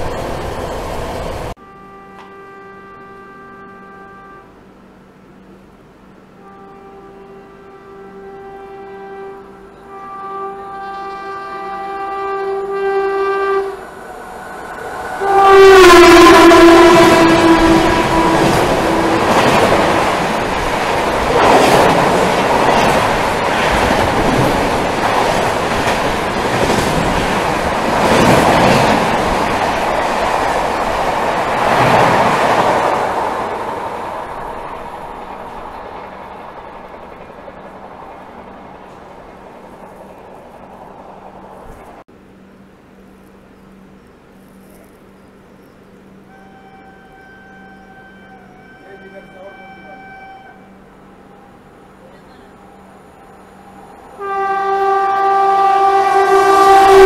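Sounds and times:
train horn blasts: 0:01.6 - 0:04.7, 0:06.3 - 0:20.2, 0:46.2 - 0:51.7, 0:54.1 - 0:57.0.

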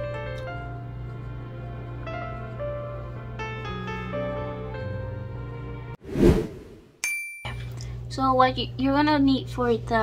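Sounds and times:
background music with held notes: 0:00.0 - 0:06.0
whoosh transition effect: 0:06.0 - 0:06.9.

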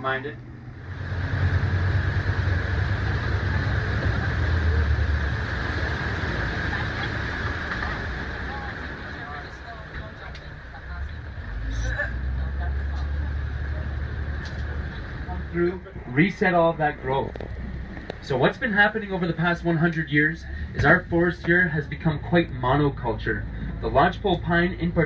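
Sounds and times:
boat engine rumble: 0:00.0 - 0:25.0
water and air rushing: 0:00.0 - 0:25.0.

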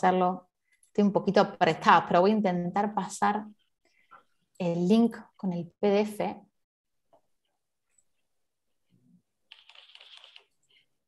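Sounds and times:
rapid typing on keyboard: 0:09.4 - 0:10.9.

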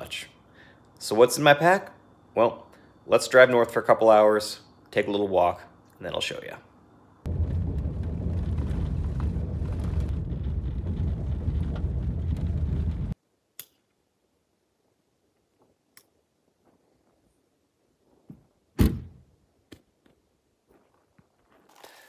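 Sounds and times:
car road rumble: 0:07.3 - 0:13.2.

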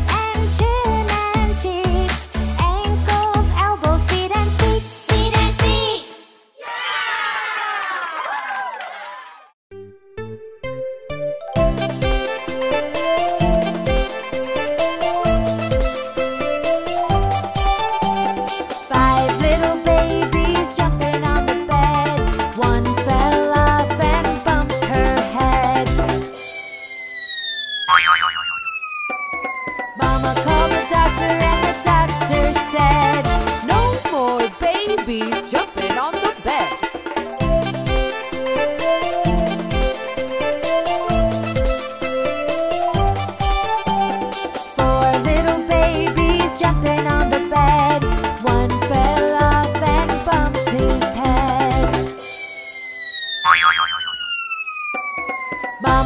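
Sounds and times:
descending cartoon whistle: 0:26.3 - 0:30.1, 0:52.1 - 0:55.9
wobbling boing: 0:27.9 - 0:28.6, 0:53.4 - 0:54.2.

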